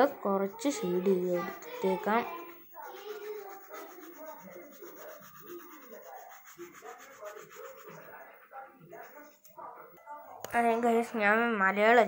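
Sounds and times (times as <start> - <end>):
pencil rubbing on paper: 0.0 - 9.5.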